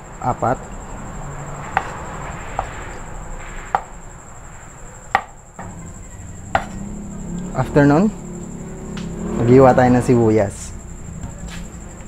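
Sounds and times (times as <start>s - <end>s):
steady background noise: 0.0s - 12.0s
cleaver chopping on wooden board: 6.5s - 6.8s.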